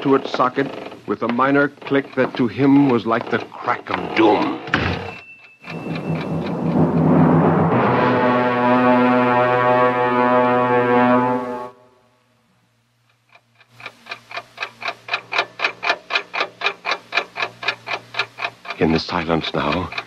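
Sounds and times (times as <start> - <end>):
clock ticking fast: 0.0 - 7.8, 12.9 - 20.0
held music chord: 6.5 - 12.0.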